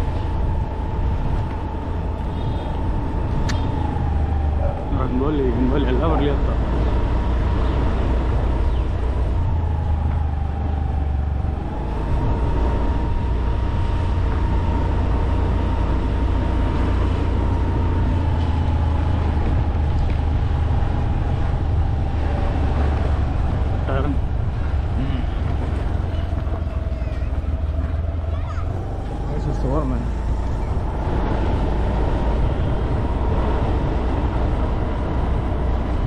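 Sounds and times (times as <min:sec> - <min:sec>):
vehicle rumble: 0:00.0 - 0:36.0.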